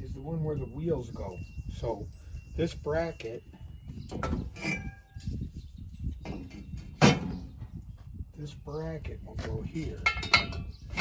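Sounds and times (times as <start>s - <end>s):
metal brackets knocking and scraping: 4.1s - 5.4s, 6.2s - 7.7s, 9.4s - 11.0s.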